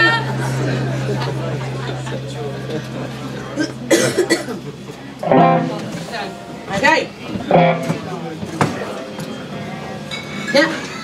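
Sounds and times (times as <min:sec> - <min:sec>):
electric guitar through amplifier: 0:00.0 - 0:10.1.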